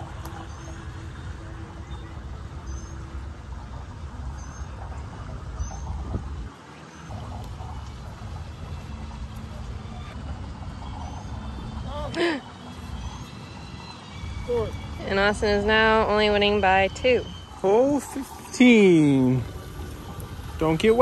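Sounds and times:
low rumble: 0.0 - 21.0.

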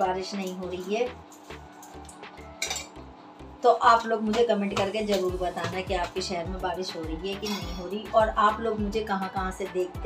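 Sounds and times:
background music with steady beat: 0.0 - 10.0
kitchen utensils clinking: 0.6 - 3.0.

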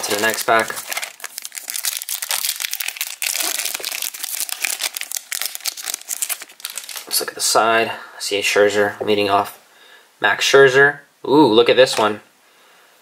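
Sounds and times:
foil wrapper crinkling and tearing: 0.0 - 7.2.

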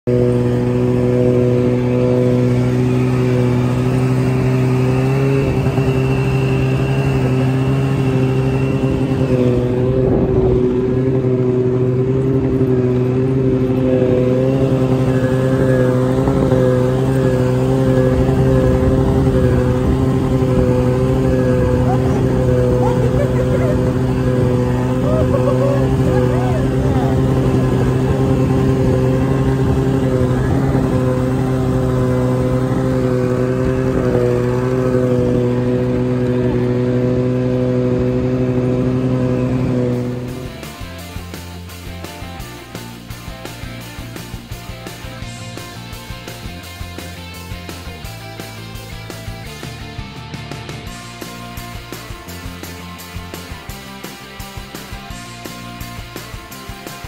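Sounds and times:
snowmobile engine running: 0.0 - 57.0.

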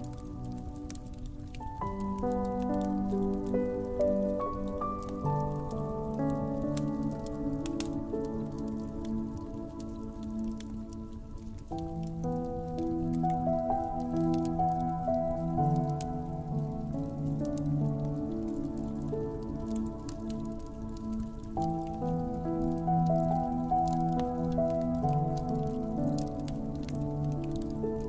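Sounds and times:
soft piano chords: 0.0 - 28.0
wood fire crackling: 0.0 - 28.0.

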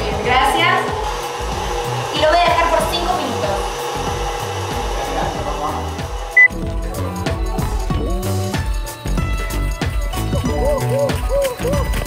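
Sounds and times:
people talking: 0.0 - 1.0, 2.1 - 3.7, 5.0 - 6.0
stand mixer motor whirring: 0.0 - 6.8
background music: 0.0 - 12.0.

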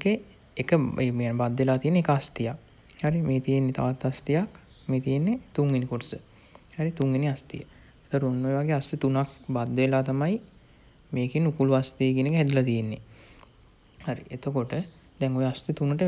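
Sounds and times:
man talking: 0.0 - 6.2, 6.8 - 10.4, 11.2 - 13.0, 14.0 - 16.0.

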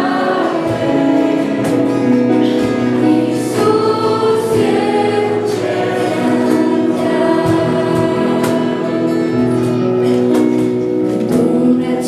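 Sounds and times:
girls singing worship song: 0.0 - 9.6, 11.3 - 12.0
electronic keyboard chords: 0.0 - 12.0.

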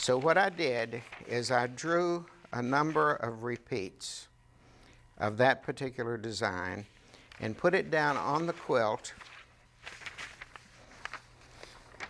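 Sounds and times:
paper rustling and scraping: 7.3 - 12.0.

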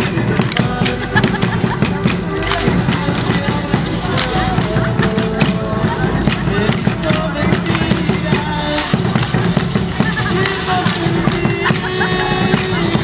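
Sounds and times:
dancers' steps: 0.0 - 13.0
folk melody: 0.0 - 13.0
voices: 0.0 - 13.0.

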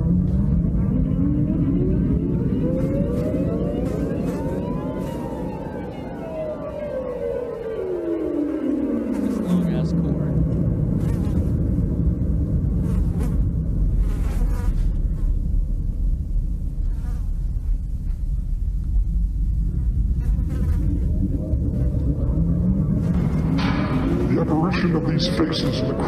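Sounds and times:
falling electronic sweep: 0.0 - 12.6
low buzzing drone: 0.0 - 26.0.

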